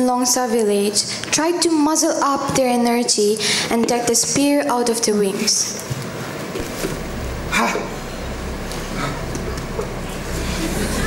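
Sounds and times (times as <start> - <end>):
performance hall low hum: 0.0 - 11.0.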